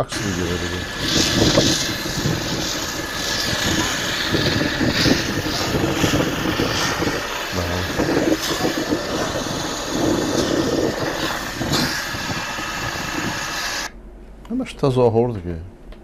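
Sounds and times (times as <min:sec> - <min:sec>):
loud rushing noise: 0:00.0 - 0:13.9
vehicle engine running: 0:00.0 - 0:13.9.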